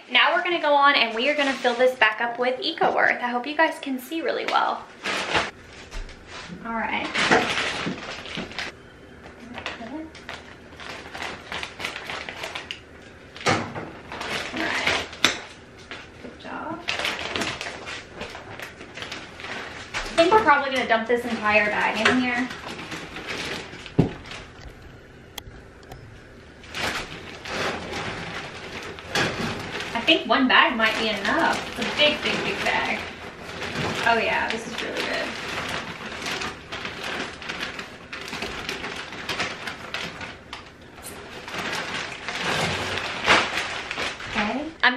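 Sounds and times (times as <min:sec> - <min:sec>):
plastic bag crinkling: 0:00.2 - 0:03.5, 0:04.2 - 0:25.0, 0:26.4 - 0:44.8.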